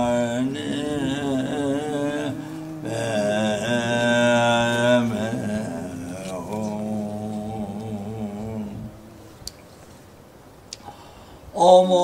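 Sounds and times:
man chanting a mantra: 0.0 - 9.4, 11.5 - 12.0.

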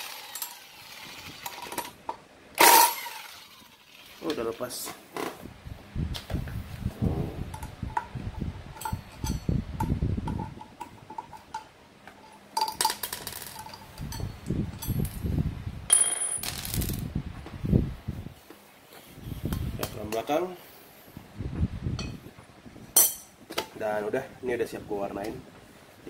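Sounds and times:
metal bolts clicking and clinking: 10.3 - 15.1
high metallic ring: 15.9 - 16.5.

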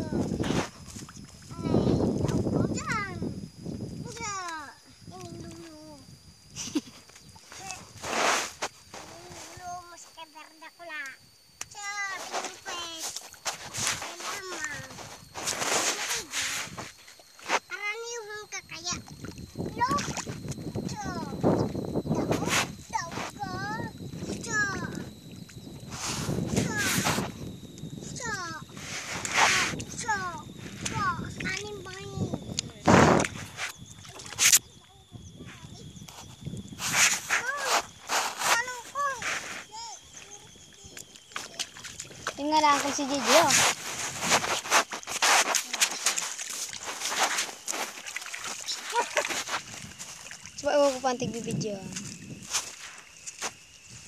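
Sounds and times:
child calling: 0.0 - 0.2, 1.5 - 3.3, 4.0 - 6.0, 15.9 - 16.5, 20.8 - 21.5, 22.1 - 25.1, 26.5 - 27.2, 28.1 - 28.8, 29.4 - 32.8, 34.1 - 35.9, 37.3 - 37.9, 38.5 - 43.6, 48.7 - 49.4
mud splashing and sloshing: 19.0 - 20.8, 34.0 - 34.6, 41.0 - 53.7.

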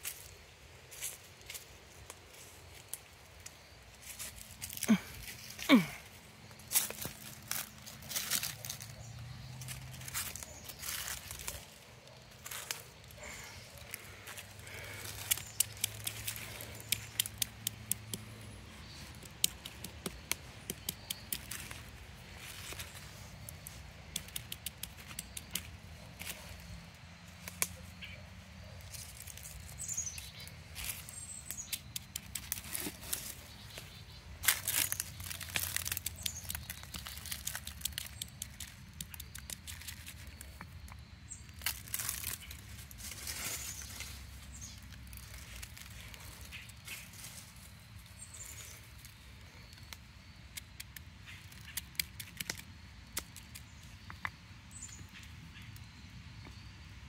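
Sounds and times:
dry leaves and twigs crackling: 0.0 - 56.7.

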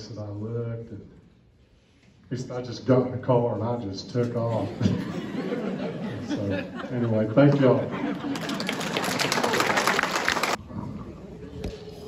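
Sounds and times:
audience clapping: 7.5 - 10.6.

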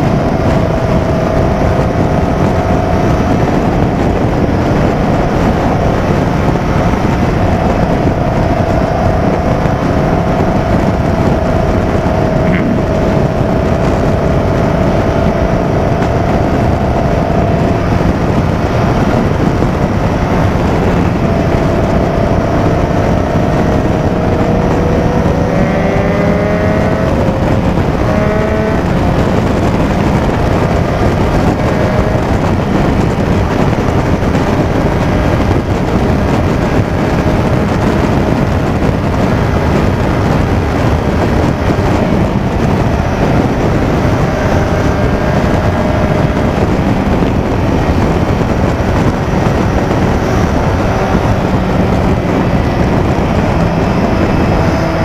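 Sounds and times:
motorcycle engine accelerating: 0.0 - 55.0
wind rush on microphone: 0.0 - 55.0.

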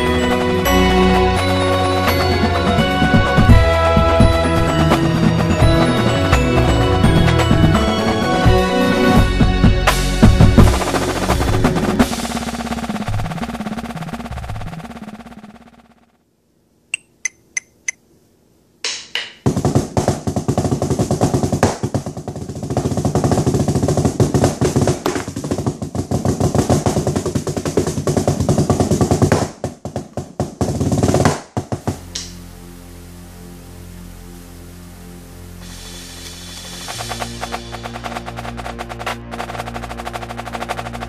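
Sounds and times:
intro music: 0.0 - 15.1, 31.9 - 41.0
drumsticks on practice pad: 16.9 - 18.0
count-off clicks: 17.0 - 18.0.

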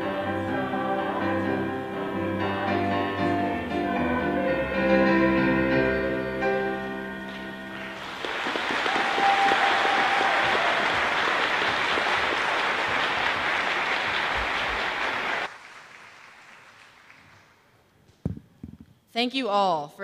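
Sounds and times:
audience applauding: 7.7 - 17.7.

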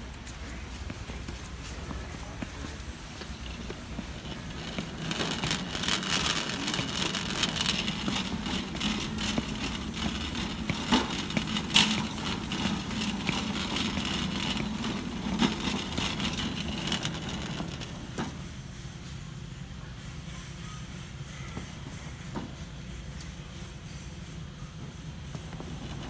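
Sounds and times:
boot footsteps: 0.1 - 16.9
shopping cart rolling on concrete: 0.1 - 18.7, 24.7 - 26.0.

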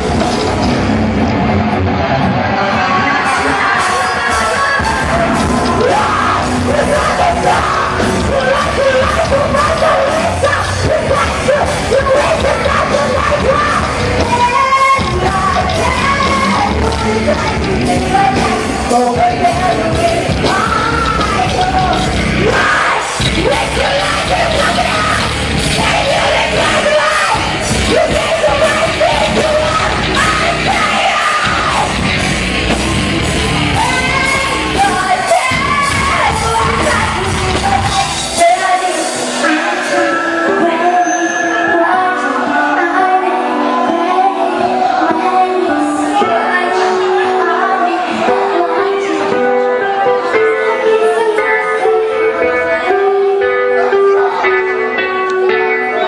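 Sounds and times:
drums: 0.0 - 56.0
electric guitars: 0.0 - 56.0
heavy metal band playing: 0.0 - 56.0
woman singing and yelling: 2.8 - 32.0, 33.7 - 54.5.

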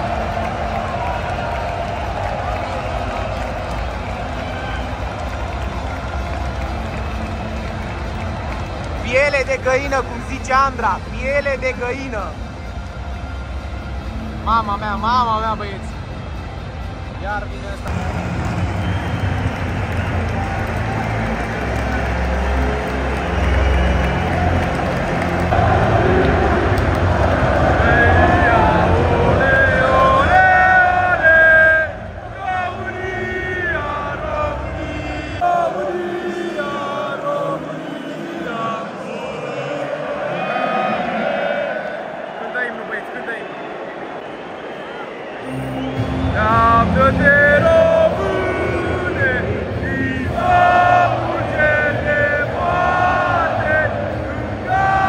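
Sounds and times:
music over public address system: 0.0 - 40.4, 45.4 - 55.0
stadium crowd singing and chanting: 0.0 - 55.0.

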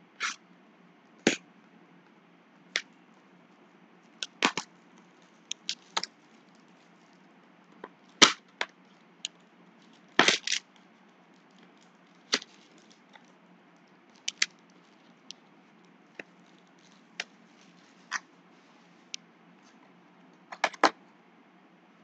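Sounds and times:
plastic shrink wrap crackling: 4.1 - 7.3, 8.0 - 19.2.

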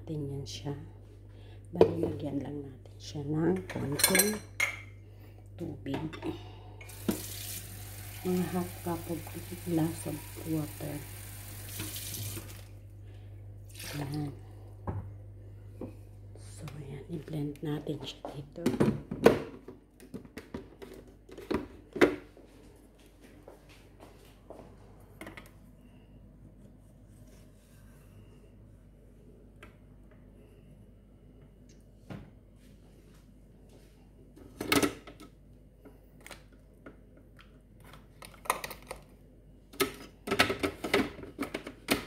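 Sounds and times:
low room hum: 0.0 - 42.0.

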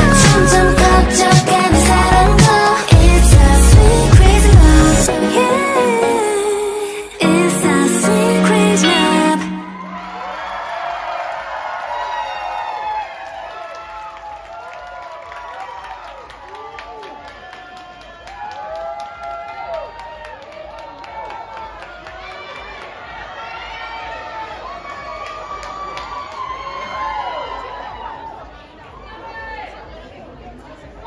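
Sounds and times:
audience cheering: 9.0 - 28.5
scattered clapping: 13.5 - 23.1.

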